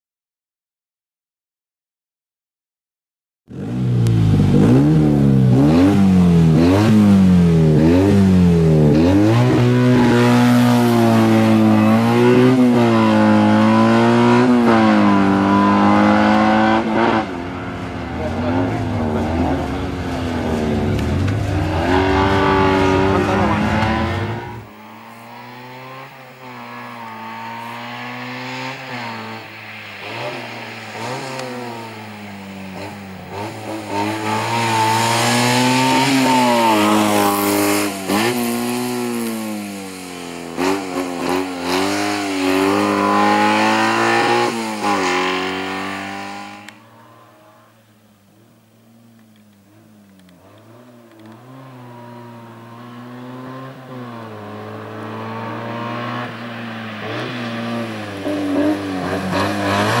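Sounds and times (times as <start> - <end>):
race car engine revving: 3.5 - 48.0, 49.0 - 60.0.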